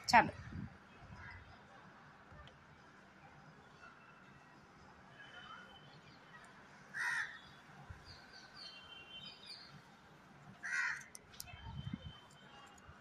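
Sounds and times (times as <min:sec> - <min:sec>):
crow cawing: 0:07.0 - 0:07.4, 0:10.6 - 0:11.0.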